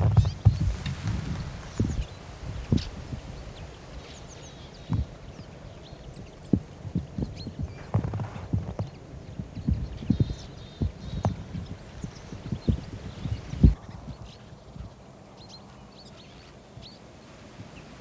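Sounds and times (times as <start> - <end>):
flock of birds chirping: 0.0 - 18.0.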